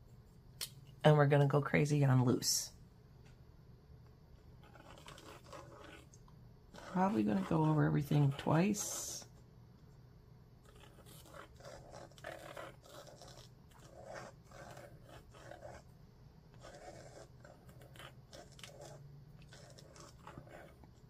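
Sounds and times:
pen scratching on paper: 4.4 - 9.4, 10.6 - 15.9, 16.5 - 21.0.

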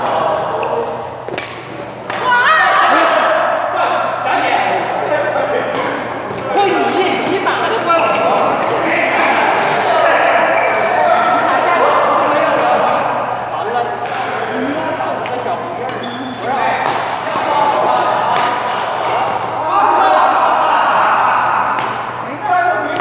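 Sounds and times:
rackets hitting shuttlecock: 1.3 - 2.4, 14.0 - 14.4, 15.2 - 17.5, 18.2 - 19.6, 21.7 - 22.2
people talking: 2.2 - 23.0.

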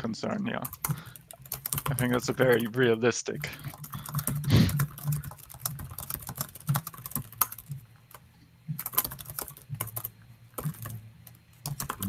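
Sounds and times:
faint low hum: 0.0 - 12.0
typing on computer keyboard: 0.6 - 8.2, 8.8 - 12.0.

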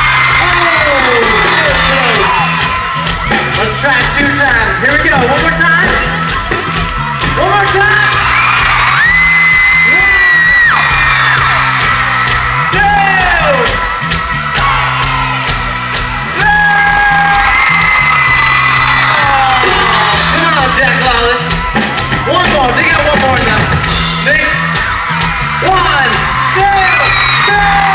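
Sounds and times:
audience screaming: 0.0 - 27.9
pop-rock band playing loud: 0.0 - 27.9.

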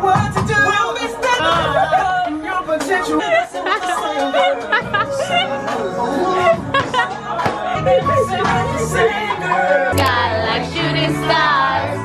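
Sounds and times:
people chattering: 0.6 - 10.9.

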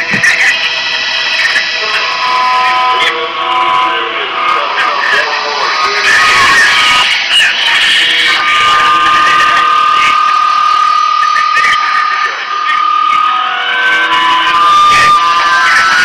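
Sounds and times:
long held noise tones: 0.0 - 16.0.

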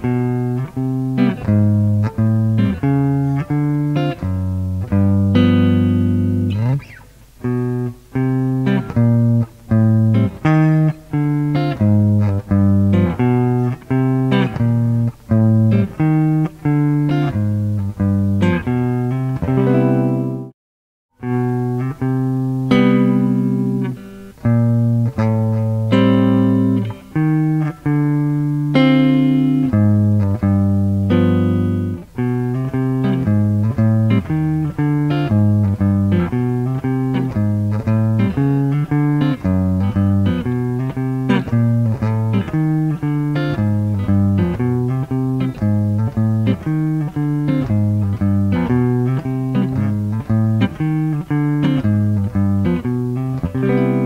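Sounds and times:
clean electric guitar jazz: 0.0 - 20.5, 21.2 - 54.0.

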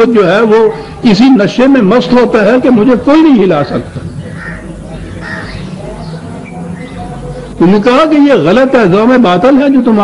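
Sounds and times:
bird calling: 3.5 - 7.9.

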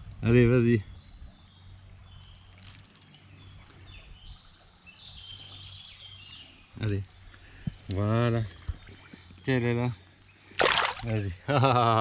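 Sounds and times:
birdsong: 0.0 - 12.0
stream water: 1.4 - 12.0.

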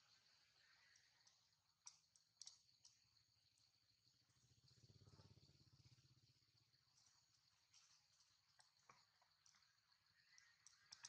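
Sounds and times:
faint sharp clicks: 0.8 - 3.1, 7.7 - 11.0.

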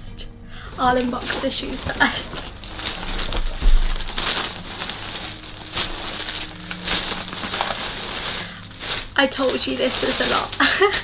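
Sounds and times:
packaging rustling and crinkling: 0.6 - 11.0
low thump: 3.6 - 4.1.

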